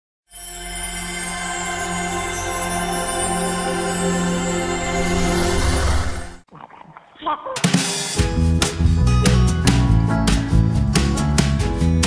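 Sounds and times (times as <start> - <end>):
background music: 0.3 - 6.4, 7.6 - 12.0
music with drum beat: 7.6 - 12.0.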